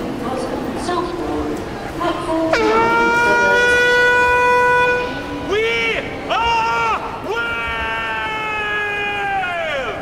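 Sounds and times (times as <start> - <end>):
person singing a long high note: 2.5 - 5.2.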